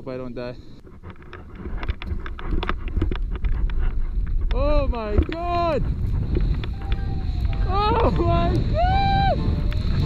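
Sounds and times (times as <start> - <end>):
wind rumbling on microphone: 0.7 - 10.0.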